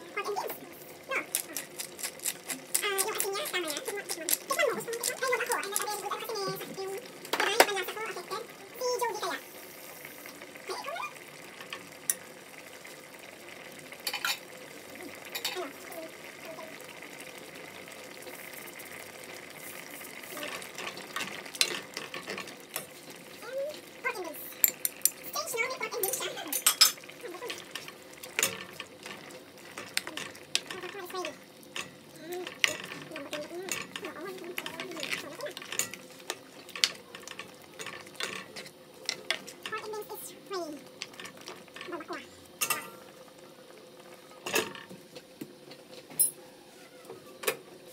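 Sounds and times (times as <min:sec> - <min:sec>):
stew bubbling in a pot: 0:00.0 - 0:47.9.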